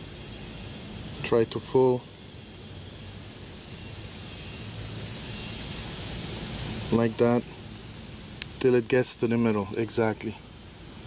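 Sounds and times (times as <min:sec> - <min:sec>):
steady outdoor background hiss: 0:00.0 - 0:11.0.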